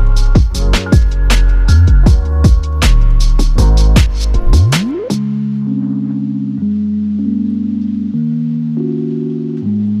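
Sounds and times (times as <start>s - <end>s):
soft low synth chords: 0.0s - 10.0s.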